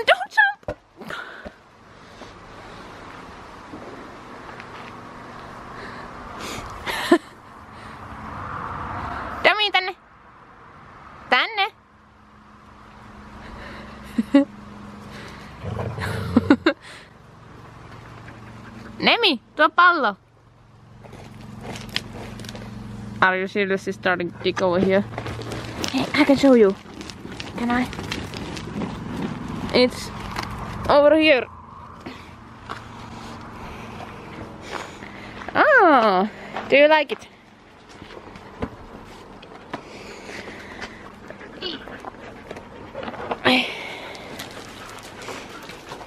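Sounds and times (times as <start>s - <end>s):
dogs scuffling on gravel: 24.7s - 30.9s, 44.0s - 46.0s.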